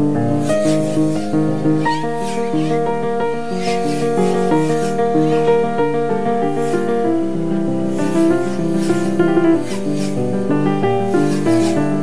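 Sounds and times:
solo piano music: 0.0s - 12.0s.

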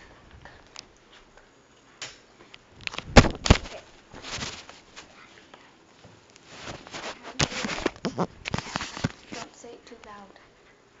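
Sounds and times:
camera handling rustling: 2.8s - 4.7s, 6.6s - 9.5s.

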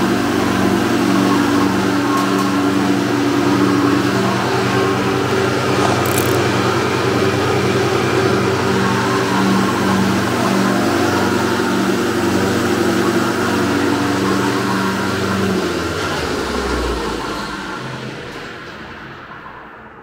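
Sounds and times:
planer machine humming: 3.4s - 16.5s.

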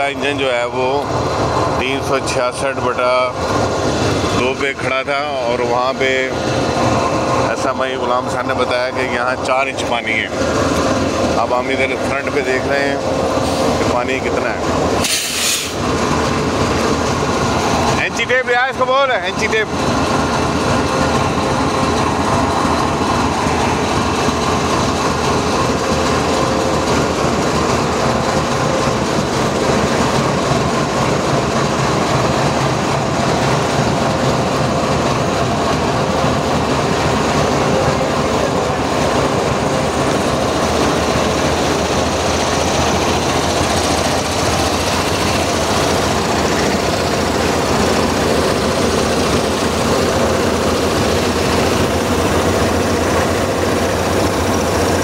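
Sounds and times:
diesel locomotive engine idling: 0.0s - 55.0s.

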